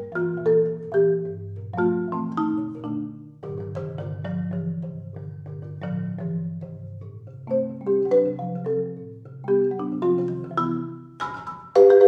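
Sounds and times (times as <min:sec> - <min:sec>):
solo marimba: 0:00.0 - 0:12.0.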